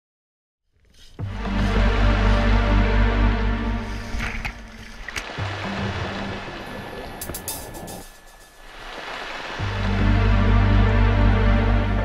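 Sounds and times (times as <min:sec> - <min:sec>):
background music low tones: 0:00.8 - 0:12.0
water splashing in ice hole: 0:04.0 - 0:07.8, 0:08.6 - 0:09.8.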